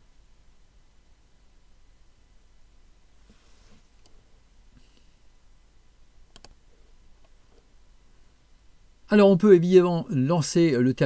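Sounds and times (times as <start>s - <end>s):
computer mouse clicks: 6.3s - 6.6s.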